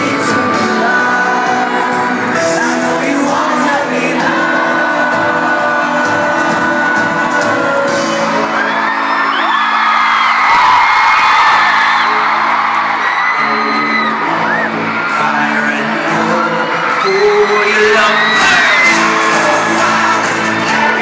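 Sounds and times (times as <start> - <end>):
live pop band with singing: 0.0 - 21.0
fans whooping and screaming: 7.0 - 21.0.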